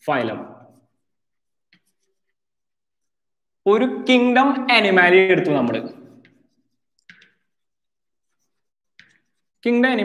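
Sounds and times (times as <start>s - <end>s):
chalk scraping on blackboard: 0.4s - 3.4s, 5.4s - 9.8s
man speaking: 3.6s - 6.0s.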